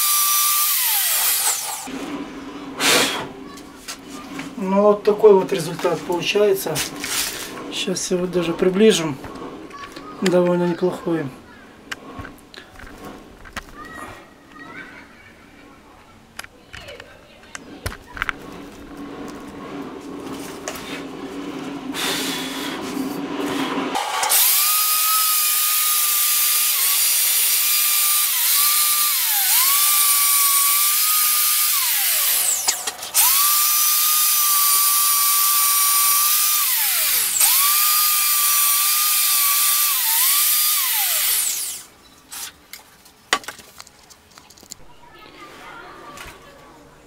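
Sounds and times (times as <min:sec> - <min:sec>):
power tool cup brush scrubbing metal: 0:00.0 - 0:01.9, 0:21.9 - 0:42.5.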